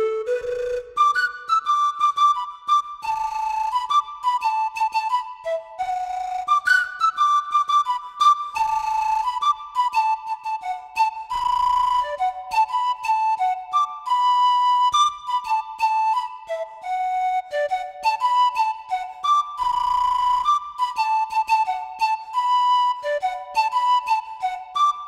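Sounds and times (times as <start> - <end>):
flute melody: 0.0 - 25.0.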